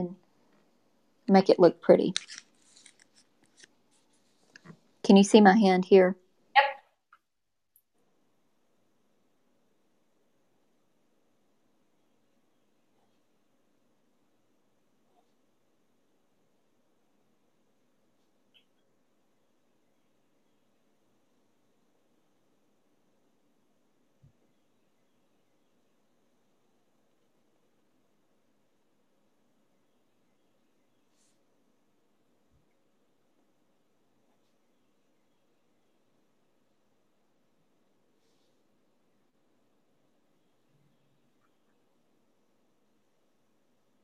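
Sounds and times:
paper rustle: 0:02.1 - 0:04.8.

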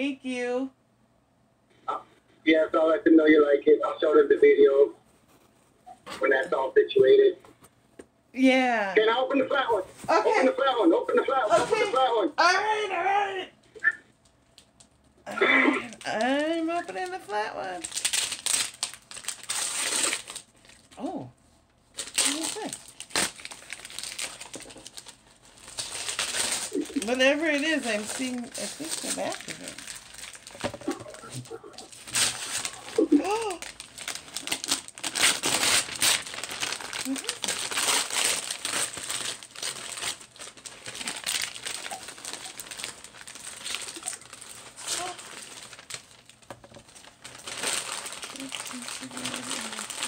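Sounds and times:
gift wrapping crinkling: 0:09.7 - 0:12.2, 0:13.8 - 0:21.2, 0:21.8 - 0:50.0.

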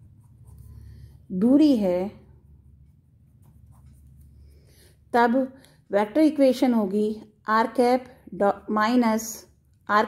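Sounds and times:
pen scratching on paper: 0:00.0 - 0:01.6, 0:02.8 - 0:04.6.

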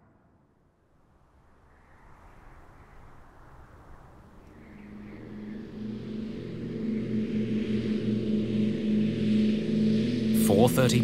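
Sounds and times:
propeller airliner engines droning: 0:04.2 - 0:11.0.

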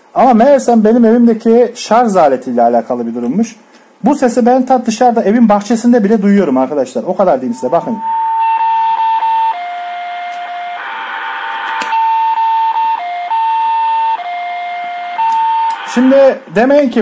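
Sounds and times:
radio whistling tone stepping pitch: 0:07.4 - 0:14.2, 0:15.2 - 0:16.4.

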